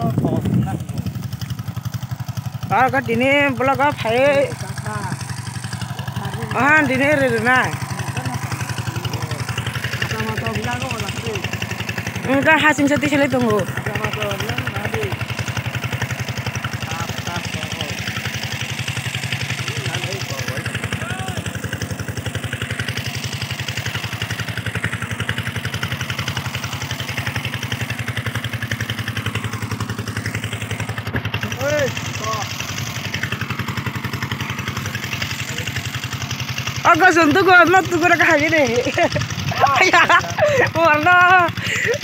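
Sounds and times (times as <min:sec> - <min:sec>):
small engine running: 0:00.0 - 0:42.0.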